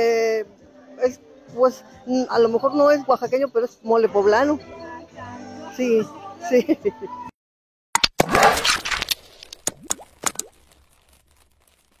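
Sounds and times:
pops with rising pitch glides: 9.6s - 10.8s.

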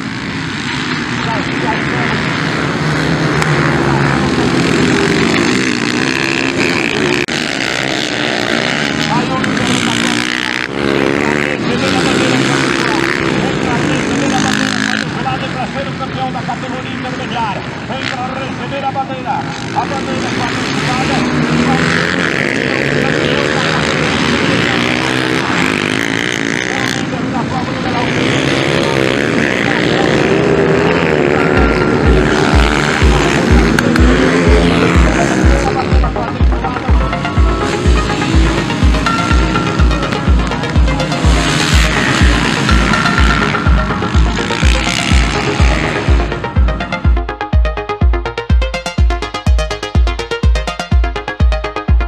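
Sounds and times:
dirt bike engines revving: 0.0s - 52.0s.

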